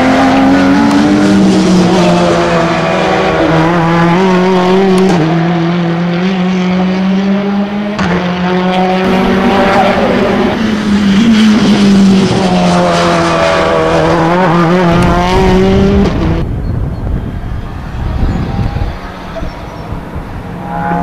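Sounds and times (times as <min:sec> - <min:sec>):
racing car engine running hard: 0:00.0 - 0:21.0.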